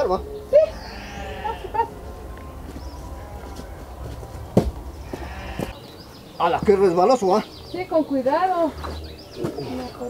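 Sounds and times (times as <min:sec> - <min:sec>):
steady low rumble: 0:00.0 - 0:05.8.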